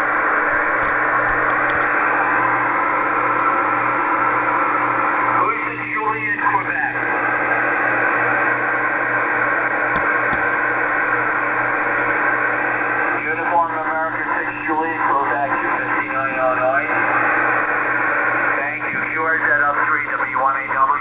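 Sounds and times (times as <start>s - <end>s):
low hum: 0.0s - 5.5s
radio hiss: 0.1s - 21.0s
weak voice over radio: 5.3s - 7.0s, 13.0s - 17.3s, 18.4s - 21.0s.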